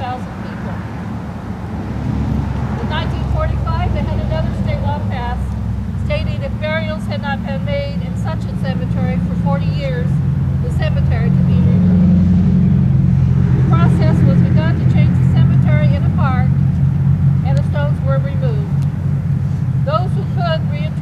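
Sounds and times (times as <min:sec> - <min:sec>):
heavy vehicle engine rumbling: 0:00.0 - 0:21.0.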